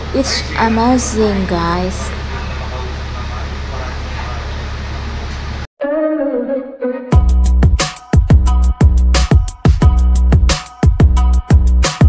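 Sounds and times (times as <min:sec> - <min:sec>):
bus engine drone: 0:00.0 - 0:07.0
person speaking: 0:00.1 - 0:02.3.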